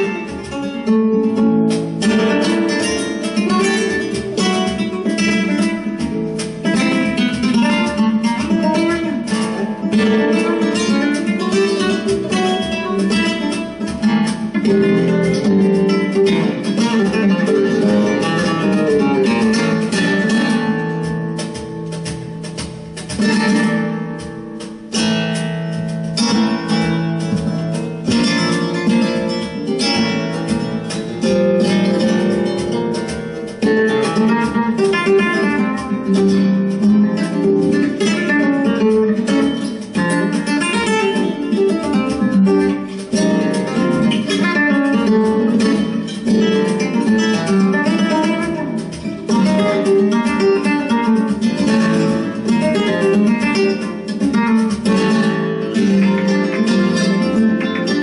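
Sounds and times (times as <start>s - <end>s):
flamenco guitar playing: 0.0s - 58.0s.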